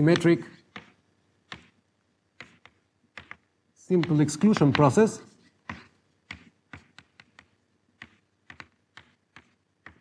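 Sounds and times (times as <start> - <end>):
chalk tapping and scraping: 0.0 - 10.0.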